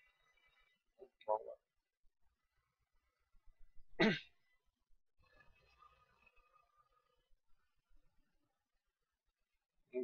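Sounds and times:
man clearing his throat: 0:04.0 - 0:04.4.

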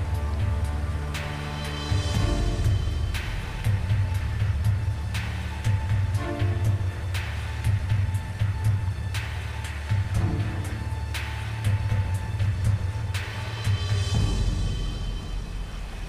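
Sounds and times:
low pulsing drum rhythm: 0:00.0 - 0:16.0.

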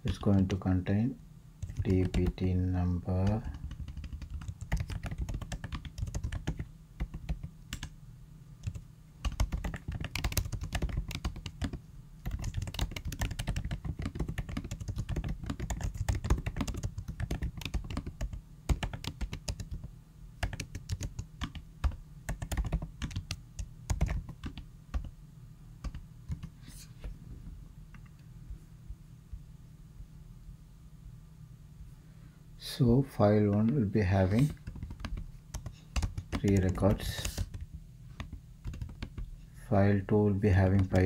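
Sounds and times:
keyboard typing: 0:01.6 - 0:02.5, 0:03.2 - 0:07.9, 0:08.6 - 0:25.1, 0:25.8 - 0:26.6, 0:34.4 - 0:39.3, 0:40.6 - 0:41.0.

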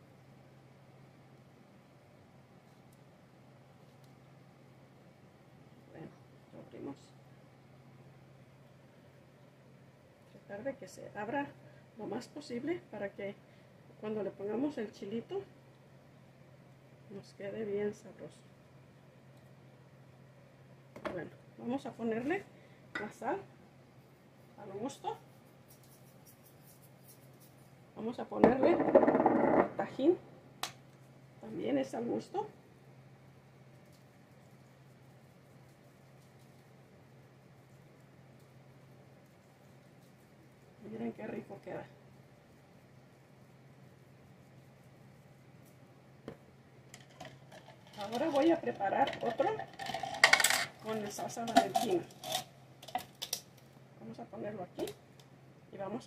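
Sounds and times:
salt shaker ticking: 0:25.4 - 0:27.6.

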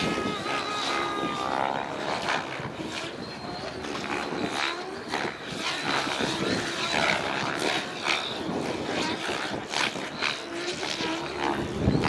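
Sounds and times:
electric motor whine: 0:00.0 - 0:12.0
rotor blades swishing: 0:00.0 - 0:12.0
thin high whine: 0:00.0 - 0:12.0.

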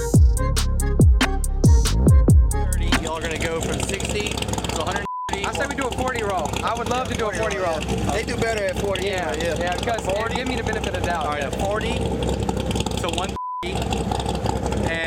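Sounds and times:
cars idling: 0:01.6 - 0:15.0
high-pitched beep: 0:05.0 - 0:05.4, 0:13.4 - 0:13.7.

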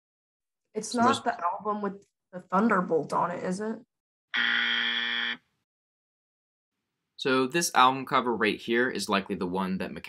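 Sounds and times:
flat buzzer: 0:04.3 - 0:05.5.

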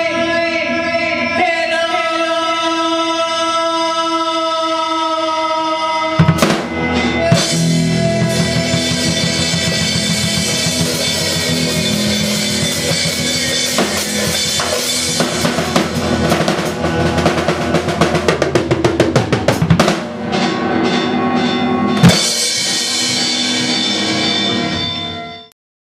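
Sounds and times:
drum kit hits: 0:06.2 - 0:25.2
electric guitars ringing chords: 0:06.2 - 0:25.5.

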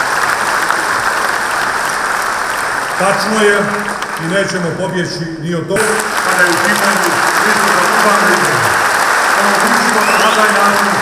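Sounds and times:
audience applauding: 0:00.0 - 0:05.0, 0:05.8 - 0:11.0.

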